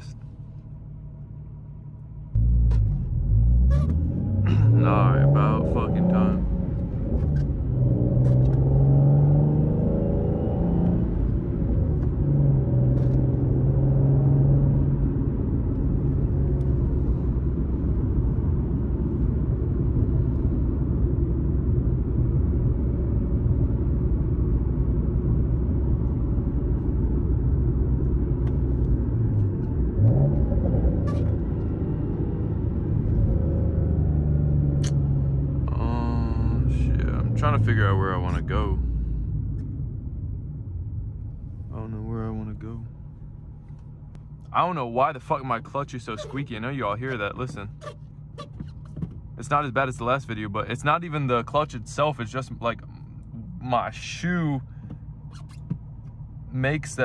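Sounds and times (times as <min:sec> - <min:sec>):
car engine accelerating: 0:01.4 - 0:57.0.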